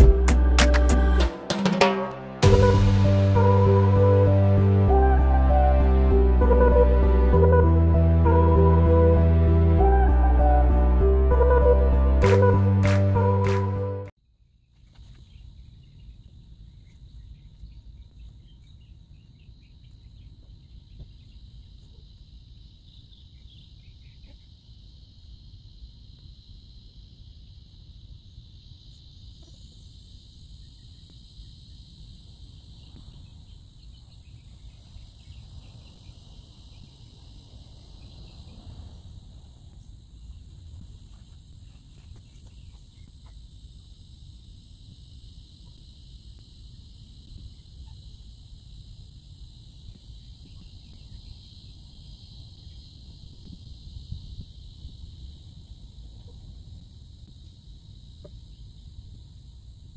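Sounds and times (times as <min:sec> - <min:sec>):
insects buzzing: 0:14.2 - 0:59.9.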